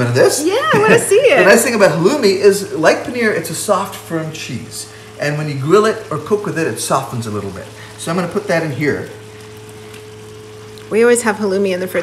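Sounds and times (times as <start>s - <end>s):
curry sizzling in a pan: 0.0s - 12.0s
steady low hum: 0.0s - 12.0s.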